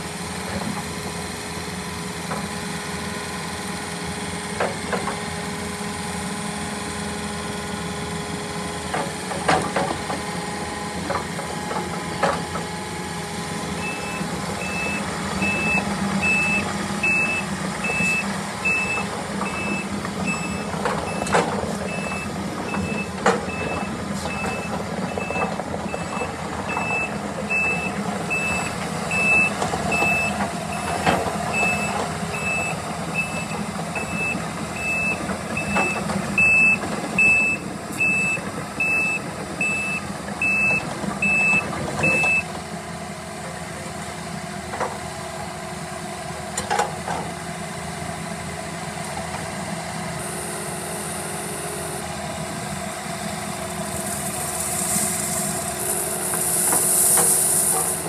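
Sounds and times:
diesel engine running: 0.0 - 58.0
excavator travel alarm beeping: 13.8 - 42.6, 50.2 - 52.3.

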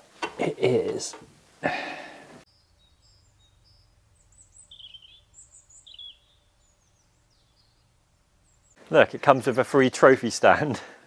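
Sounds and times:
faint steady hum: 0.7 - 8.8
small birds chirping: 2.4 - 9.3.

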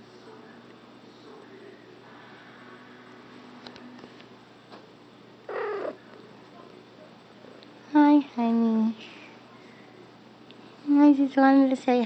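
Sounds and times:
cat meowing: 5.5 - 6.0.

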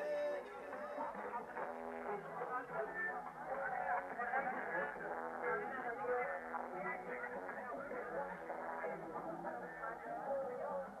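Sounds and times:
muffled voices and music from speaker: 0.0 - 11.0.

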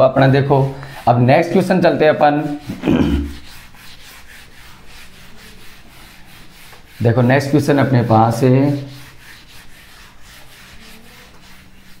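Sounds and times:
cloth rubbing on whiteboard: 0.0 - 12.0.

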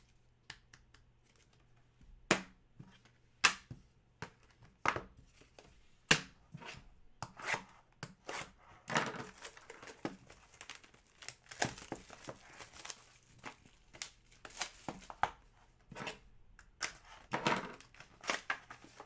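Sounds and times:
plastic wrap tearing and crinkling: 9.2 - 15.2.

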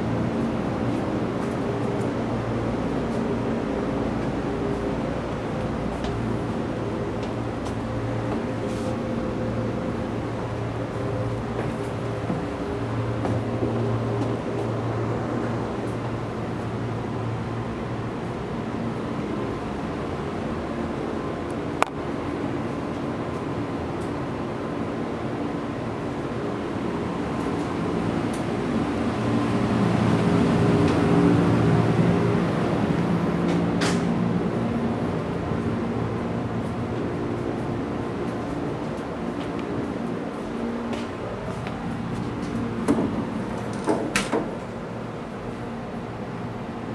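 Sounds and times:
train interior mechanical hum: 0.0 - 46.9.

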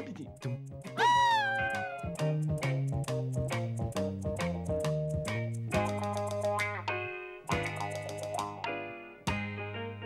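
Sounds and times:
background music: 0.0 - 10.0
kitten meowing: 1.0 - 2.2.

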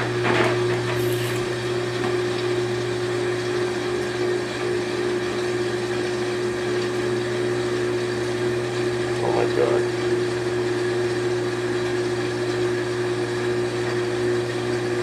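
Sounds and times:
washing machine spinning: 0.0 - 15.0.

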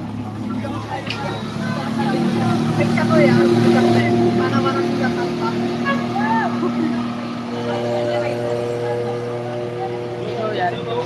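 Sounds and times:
faint voices: 0.0 - 11.0
motorboat engine droning: 0.0 - 11.0.

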